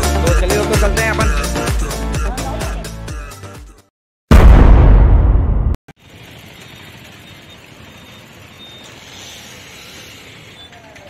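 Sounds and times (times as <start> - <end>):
road traffic: 6.0 - 11.0.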